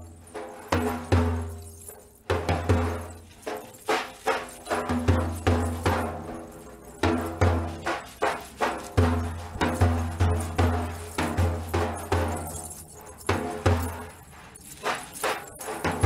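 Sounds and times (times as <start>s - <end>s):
frame drum played by hand: 0.0s - 14.2s, 14.8s - 16.0s.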